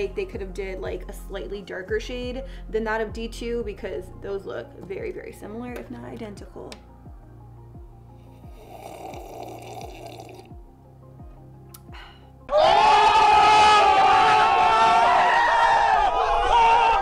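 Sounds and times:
quiet background music: 0.0s - 16.0s
slurping sip from mug: 8.3s - 10.5s
young men shouting: 12.5s - 17.0s.

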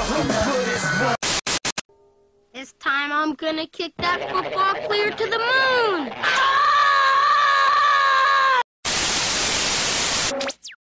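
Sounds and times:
tv static burst: 0.5s - 1.8s, 8.8s - 10.6s
cartoon boy yelling: 3.8s - 8.6s.

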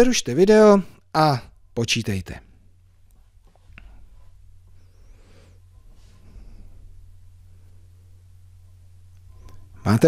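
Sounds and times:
low electrical hum: 0.0s - 10.0s
soft breaths into microphone: 3.3s - 8.3s.

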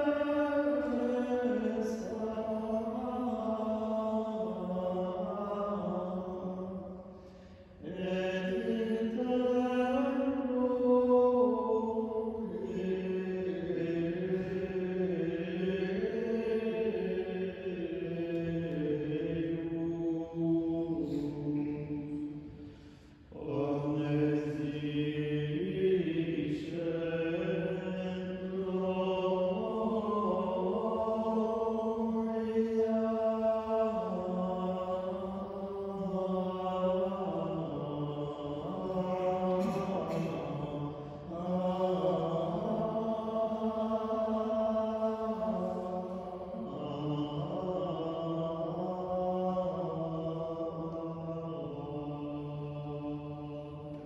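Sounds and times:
men chanting unaccompanied: 23.4s - 54.0s.

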